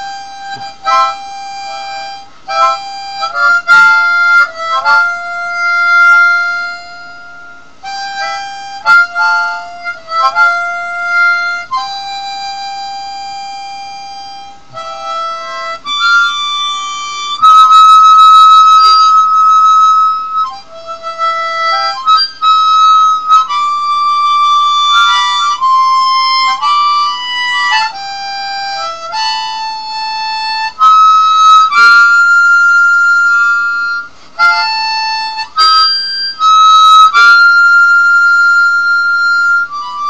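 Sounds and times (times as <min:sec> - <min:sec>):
harmonica long held note: 0:00.0 - 0:40.0.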